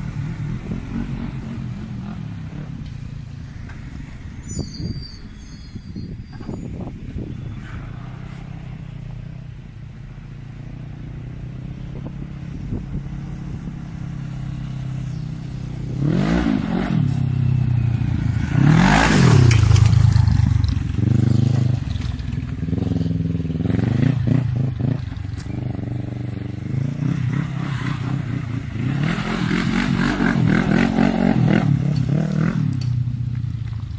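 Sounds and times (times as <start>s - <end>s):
quad engine running and revving: 0.0s - 4.1s, 10.4s - 33.9s.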